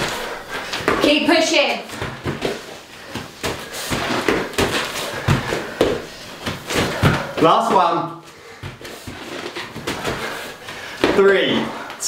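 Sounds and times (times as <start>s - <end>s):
thumps on rubber floor: 1.9s - 7.8s.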